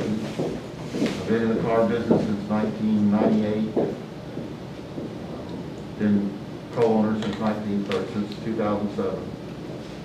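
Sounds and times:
low background rumble and hiss: 0:00.0 - 0:10.0.

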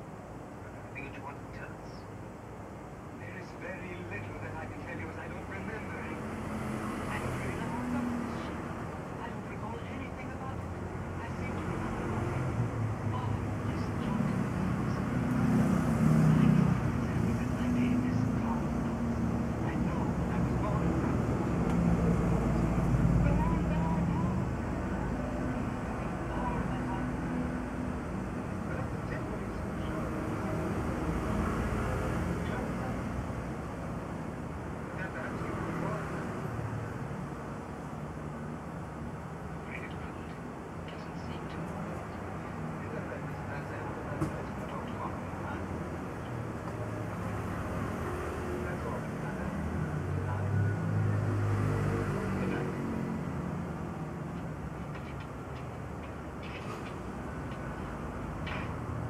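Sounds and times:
indistinct voices: 0:03.2 - 0:33.5.

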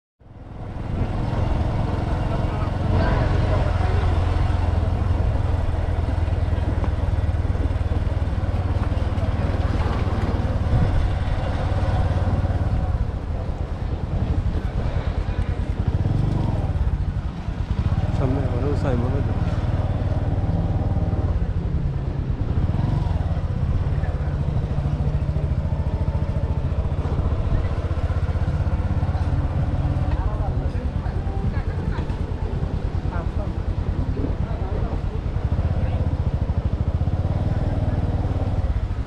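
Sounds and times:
steady low rumble: 0:00.2 - 0:39.0
people's voices: 0:00.7 - 0:39.0.

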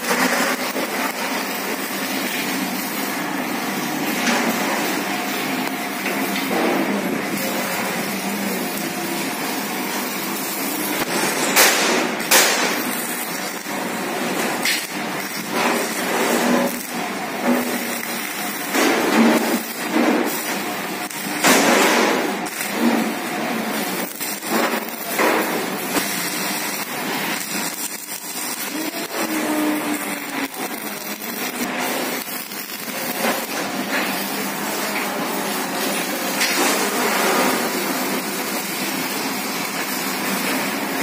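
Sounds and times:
welding arc crackling: 0:00.0 - 0:41.0.

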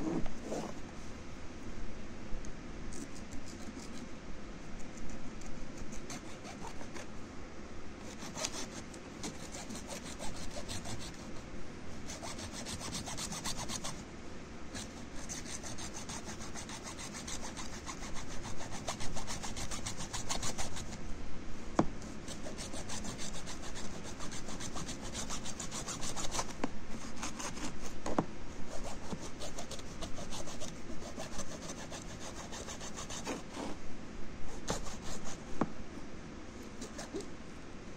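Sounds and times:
hacksaw rasping through plastic: 0:08.1 - 0:11.2.

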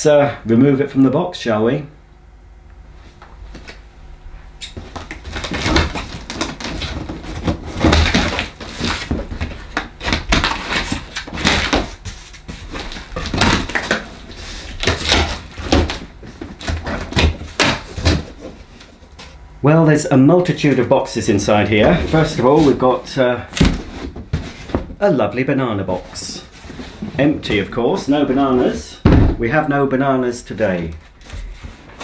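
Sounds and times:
packing tape being cut: 0:04.6 - 0:18.3
cardboard scrapes and rustles: 0:05.3 - 0:19.0, 0:26.0 - 0:27.4.

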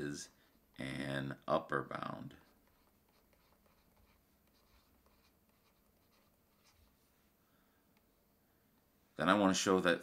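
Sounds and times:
stylus scratching on tablet: 0:02.3 - 0:07.0.

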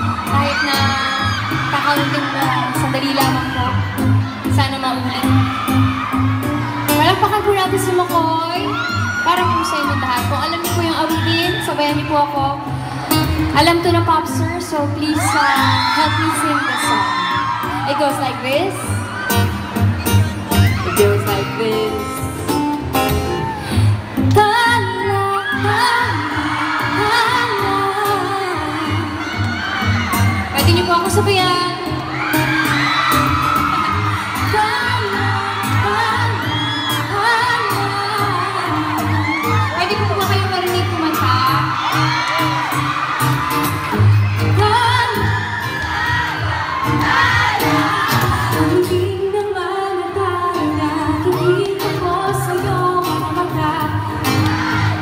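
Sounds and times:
amplified acoustic guitar: 0:00.0 - 0:55.0
crowd: 0:00.0 - 0:55.0
woman singing into microphone: 0:20.8 - 0:22.6, 0:23.6 - 0:29.9, 0:30.6 - 0:32.1, 0:33.8 - 0:41.7, 0:44.5 - 0:46.4, 0:47.2 - 0:55.0.

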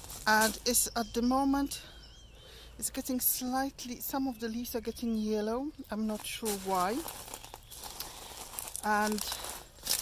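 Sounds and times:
rustling and crinkling: 0:00.0 - 0:00.8, 0:06.0 - 0:10.0.

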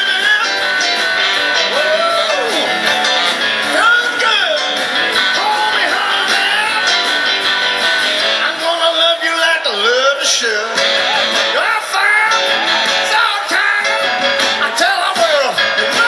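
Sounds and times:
live band music: 0:00.0 - 0:16.0.

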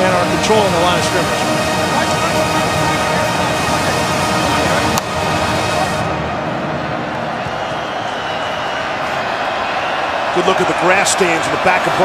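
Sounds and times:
music playing: 0:00.0 - 0:12.0
stadium crowd noise: 0:00.0 - 0:12.0.

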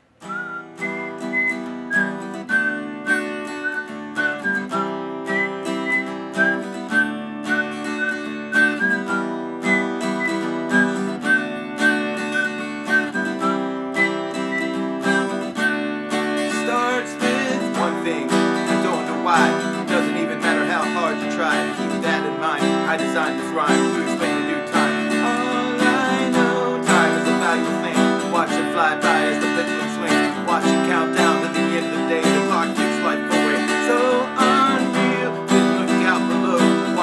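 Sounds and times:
acoustic guitar chords: 0:00.0 - 0:37.0.

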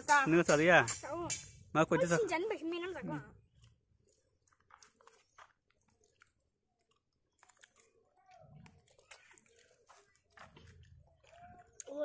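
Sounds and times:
mouth chewing wet clicks: 0:03.6 - 0:12.0.

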